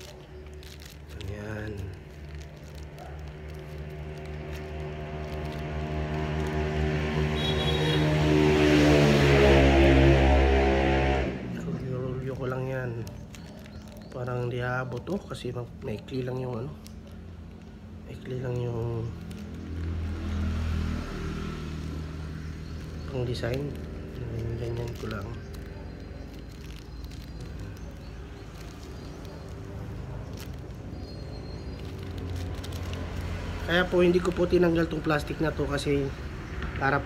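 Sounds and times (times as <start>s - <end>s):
vehicle engine approaching: 0.0s - 37.0s.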